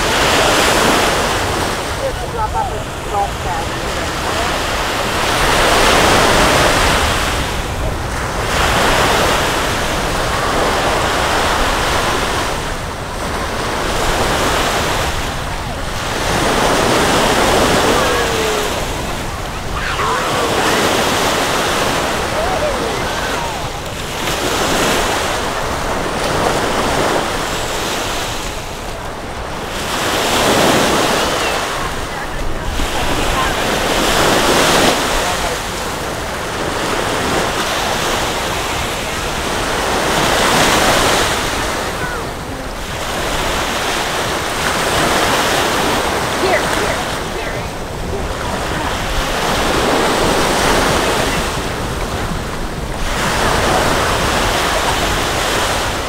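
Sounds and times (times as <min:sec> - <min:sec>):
small waves washing up sand: 0:00.0 - 0:56.0.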